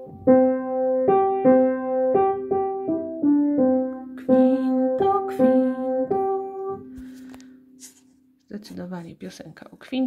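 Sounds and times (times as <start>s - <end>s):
piano notes: 0.0s - 7.7s.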